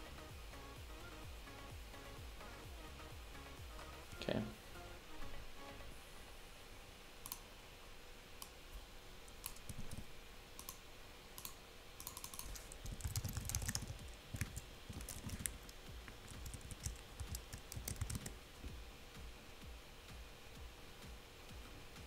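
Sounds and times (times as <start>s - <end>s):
keyboard typing: 9.3s - 10.0s, 11.4s - 18.4s.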